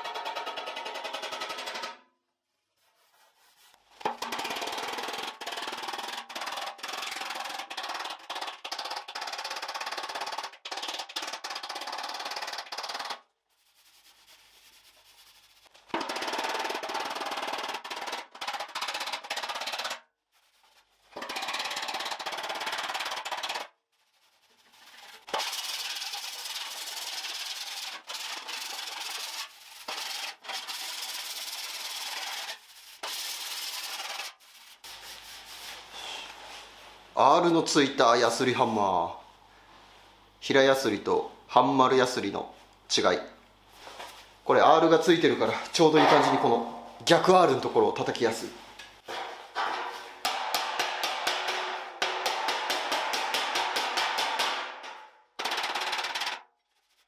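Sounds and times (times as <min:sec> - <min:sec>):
file scraping sheet steel: 0:24.3 - 0:36.1.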